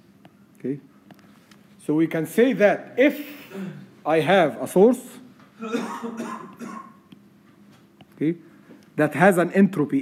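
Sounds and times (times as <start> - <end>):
man coughing: 3.4 - 3.9, 5.6 - 7.0.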